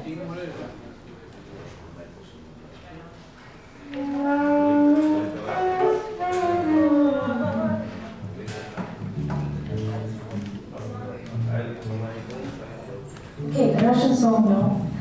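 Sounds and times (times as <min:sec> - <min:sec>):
live band music: 0:03.8 - 0:10.9.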